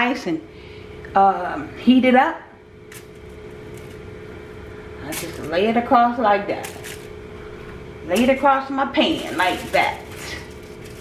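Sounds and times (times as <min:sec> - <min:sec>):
steady mechanical hum: 0:00.0 - 0:11.0
ham slices rustling on foil: 0:06.6 - 0:07.1, 0:08.1 - 0:11.0.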